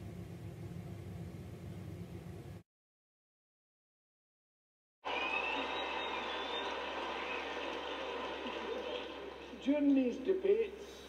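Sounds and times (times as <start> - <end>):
projector fan noise: 0.0 - 2.6, 5.1 - 11.0.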